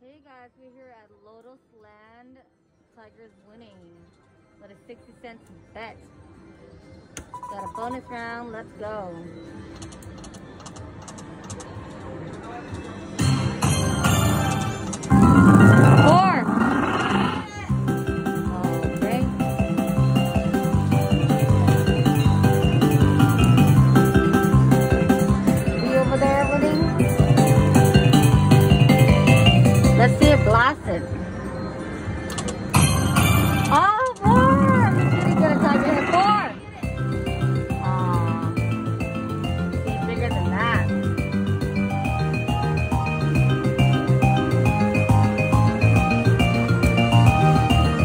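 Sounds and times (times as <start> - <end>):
slot machine win sound effects: 7.3 - 8.3, 13.2 - 16.7, 32.7 - 37.6
slot machine game music: 7.3 - 8.6, 13.2 - 48.0
tiger roar sound effect: 15.1 - 17.5, 34.2 - 36.5.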